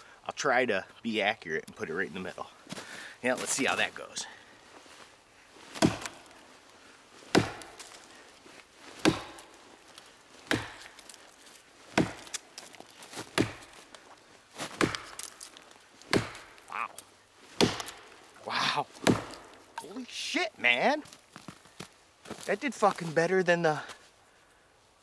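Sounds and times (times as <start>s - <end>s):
axe chopping into log: 5.8s - 6.3s, 7.3s - 8.0s, 9.0s - 9.6s, 10.4s - 11.2s, 11.9s - 12.4s, 13.2s - 13.8s, 14.6s - 15.4s, 16.1s - 16.6s, 17.6s - 18.2s, 19.0s - 19.9s.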